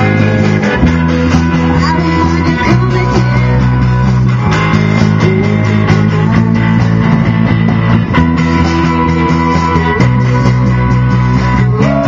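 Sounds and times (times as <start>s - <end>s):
drums with cymbal hits: 0.0s - 12.0s
electric guitar: 0.0s - 12.0s.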